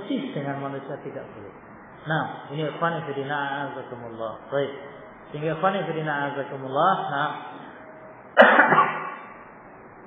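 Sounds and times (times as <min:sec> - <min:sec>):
man coughing: 0:08.4 - 0:09.4.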